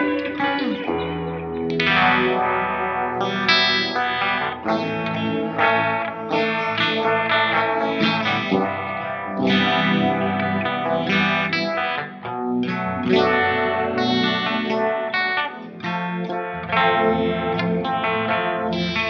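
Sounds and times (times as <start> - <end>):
electric guitar chords strummed: 0.0 - 19.0.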